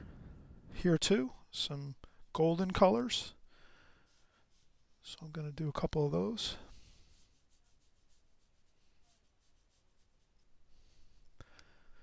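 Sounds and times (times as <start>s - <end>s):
brush strokes on paper: 2.2s - 12.0s.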